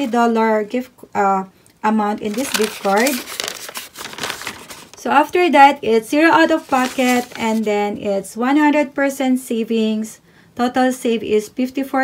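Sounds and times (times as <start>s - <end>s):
paper receipt crinkling: 2.2s - 5.1s, 6.2s - 7.8s.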